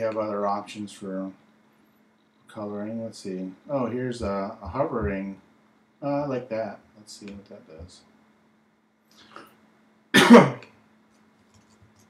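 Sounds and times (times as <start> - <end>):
faint steady hum: 0.0 - 12.0
man coughing: 10.1 - 10.7.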